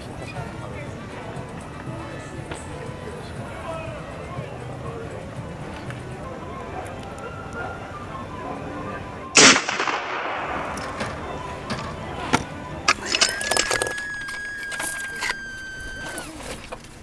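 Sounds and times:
steady high tone: 0:00.0 - 0:16.6
rifle shot: 0:09.4 - 0:11.2.

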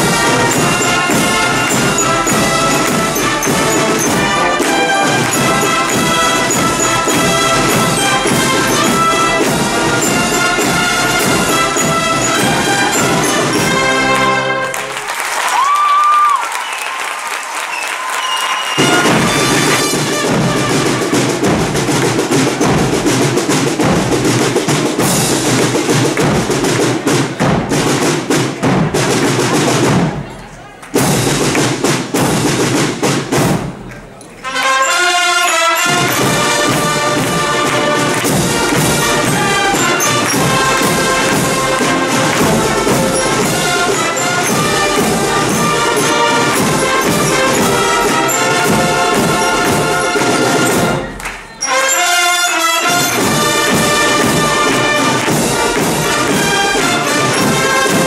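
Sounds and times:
wind band playing: 0:00.0 - 0:15.7, 0:16.5 - 0:30.3, 0:31.0 - 0:58.0.

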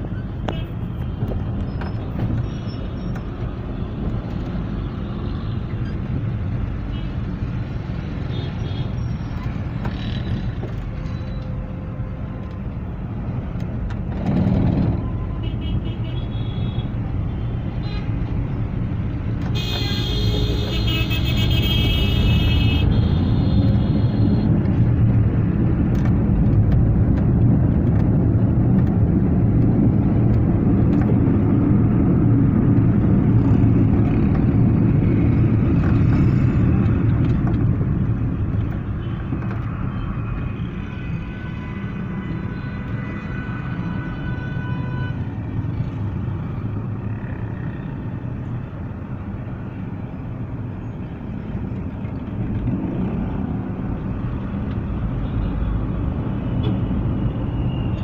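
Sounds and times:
car engine and road rumble: 0:00.0 - 0:58.0.

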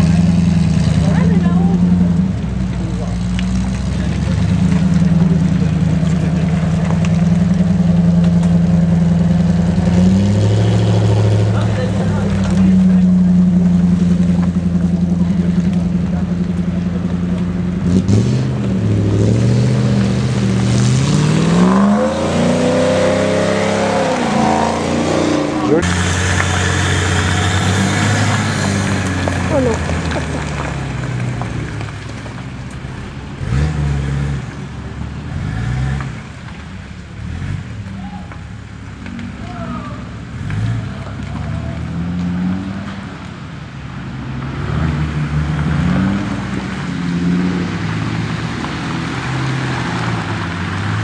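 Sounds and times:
off-road engine revving under load: 0:00.0 - 0:31.5, 0:33.4 - 0:38.0.

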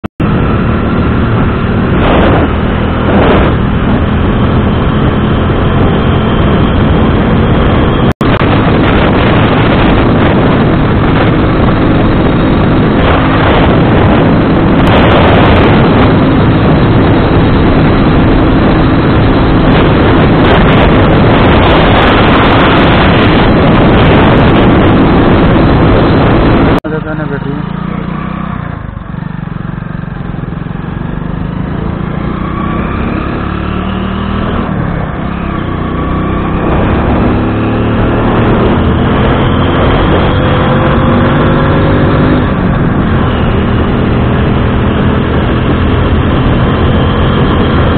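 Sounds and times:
wind rush on microphone: 0:00.2 - 0:27.4, 0:28.1 - 0:47.9
motorcycle engine cruising: 0:00.2 - 0:47.9.

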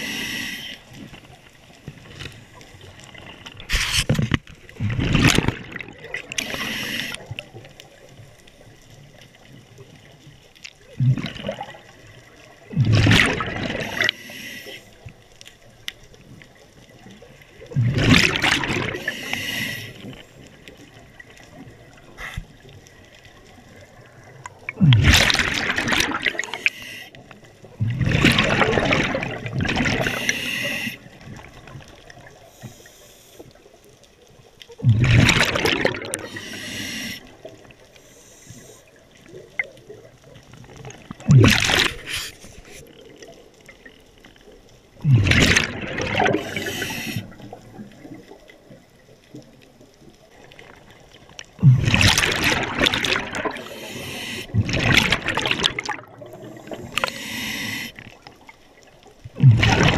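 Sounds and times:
diver breathing through regulator: 0:00.0 - 0:00.9, 0:06.3 - 0:07.3, 0:14.0 - 0:15.0, 0:18.9 - 0:20.2, 0:22.2 - 0:22.5, 0:26.4 - 0:27.2, 0:29.9 - 0:31.1, 0:36.1 - 0:37.4, 0:41.9 - 0:42.9, 0:46.3 - 0:47.5, 0:53.4 - 0:54.7, 0:56.2 - 0:58.1
air bubbles: 0:04.7 - 0:06.6, 0:10.9 - 0:12.0, 0:12.6 - 0:14.2, 0:17.6 - 0:19.1, 0:23.8 - 0:26.7, 0:27.8 - 0:30.4, 0:34.8 - 0:36.5, 0:39.3 - 0:42.2, 0:45.0 - 0:48.4, 0:50.4 - 0:58.5, 0:59.2 - 0:59.9
quiet hiss: 0:30.0 - 0:34.8, 0:36.2 - 0:41.1, 0:56.2 - 0:59.3.

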